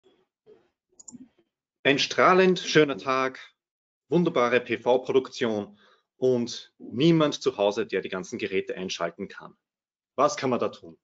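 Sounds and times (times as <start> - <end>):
man speaking: 1.9 - 9.6, 10.2 - 11.0.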